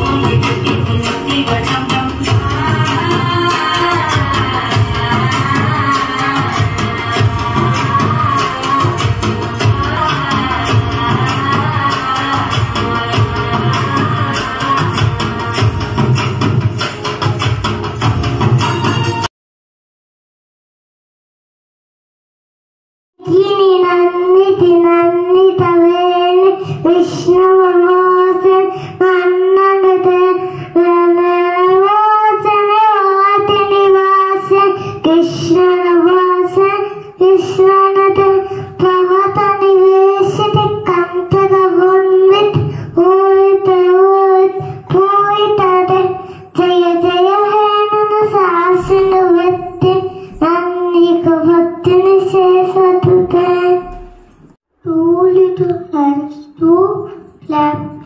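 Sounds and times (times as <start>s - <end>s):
girl singing into microphone: 0.0s - 16.7s, 23.2s - 58.0s.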